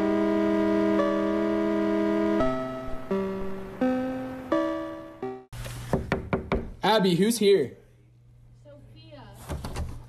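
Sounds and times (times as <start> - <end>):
soft keyboard notes: 0.9 - 5.5
knocks on a door: 5.9 - 6.8.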